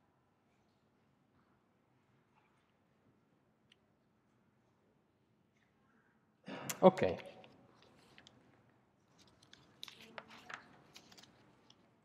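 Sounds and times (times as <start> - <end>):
faint clicks and rustles: 7.4 - 12.0.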